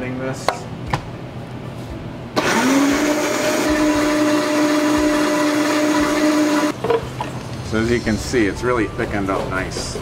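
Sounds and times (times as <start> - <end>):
blender motor whirring: 2.4 - 6.8.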